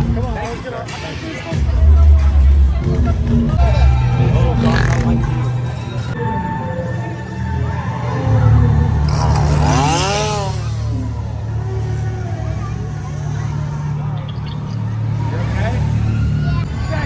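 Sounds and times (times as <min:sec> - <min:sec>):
crowd voices: 0:00.0 - 0:17.0.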